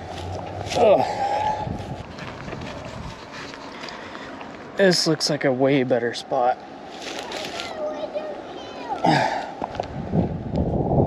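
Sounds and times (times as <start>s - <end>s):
footsteps through dry grass: 0.0s - 4.6s, 6.9s - 7.7s
light rustles and knocks: 1.8s - 4.6s.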